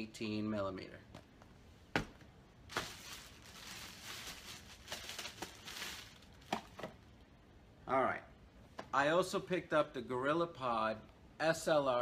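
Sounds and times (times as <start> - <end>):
plastic packaging crinkling: 2.7 - 6.9.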